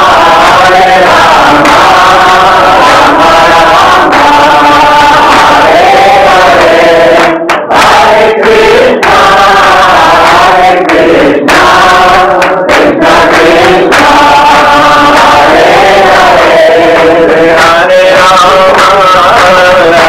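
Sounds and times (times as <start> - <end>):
crowd chanting: 0.0 - 20.0.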